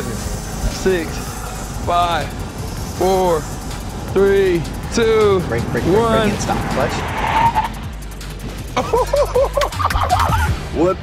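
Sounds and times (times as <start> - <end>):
car tyres squealing: 0.0 - 8.6
background music: 0.0 - 11.0
laughter: 8.8 - 10.6.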